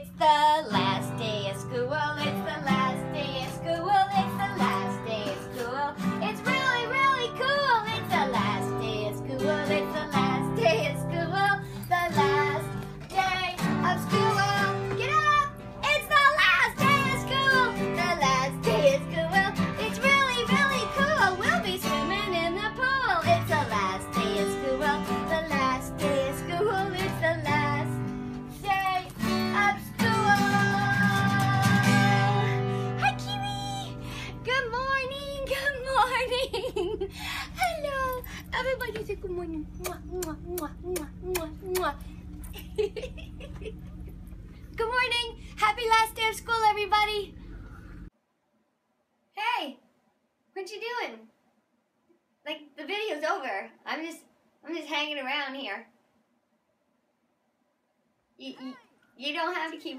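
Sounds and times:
woman singing: 0.0 - 42.1
strummed guitar: 0.7 - 36.4.

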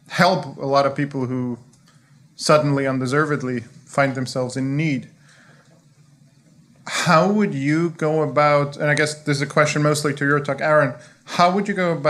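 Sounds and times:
man speaking into a microphone: 0.0 - 1.7, 2.3 - 5.2, 6.9 - 12.0.

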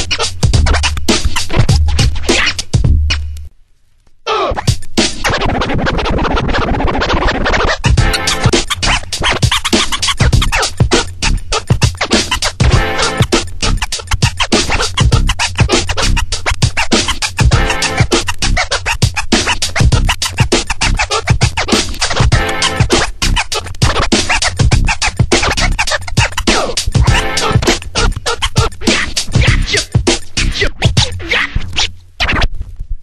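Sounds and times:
electronic hip-hop beat: 0.0 - 3.5, 4.5 - 32.4
record scratching on turntable: 0.0 - 33.0
pitched sample: 7.9 - 11.2.

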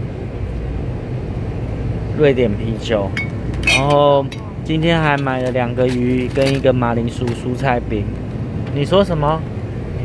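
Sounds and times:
supermarket background rumble: 0.0 - 10.0.

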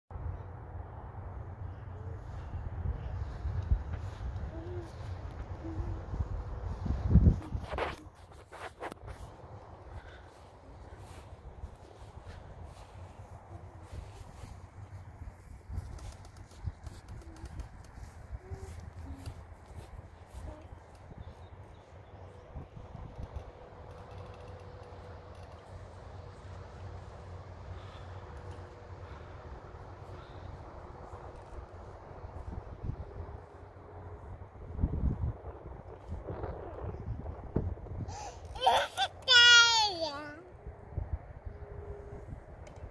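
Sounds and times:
wind rumbling on microphone: 0.1 - 38.6, 40.0 - 42.9.

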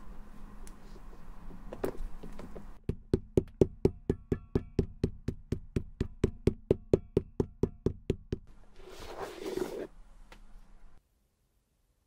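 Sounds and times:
mallet hammering boot sole: 2.8 - 8.5.

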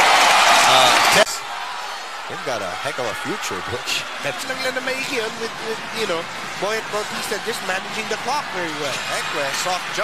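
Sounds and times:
crowd cheering loudly: 0.0 - 10.0.

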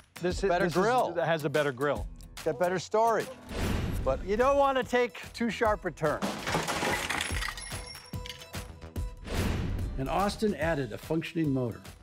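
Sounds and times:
background music: 0.0 - 12.0
metal tricycle crashing on pavement: 6.2 - 7.5
metal parts rattling and ringing: 6.5 - 8.6.

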